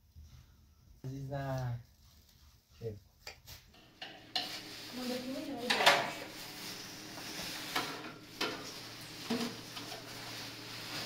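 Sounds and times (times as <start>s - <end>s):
plastic sheet rustling and crinkling: 3.5s - 11.0s.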